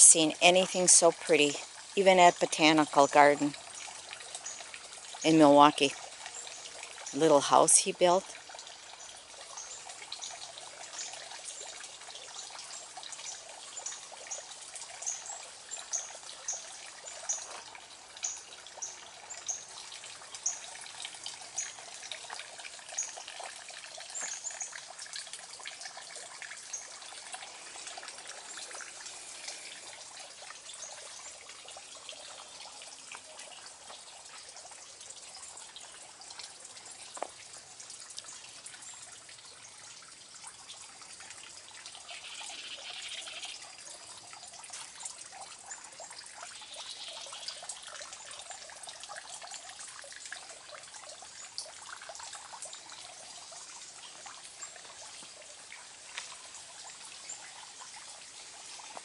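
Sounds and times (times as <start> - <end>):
water trickling: 0.0 - 59.0.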